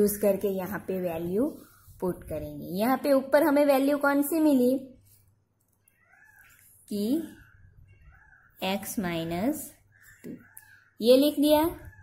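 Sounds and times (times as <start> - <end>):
woman speaking: 0.0 - 5.0, 6.9 - 7.4, 8.6 - 12.0
faint wavering pitched calls: 5.8 - 12.0.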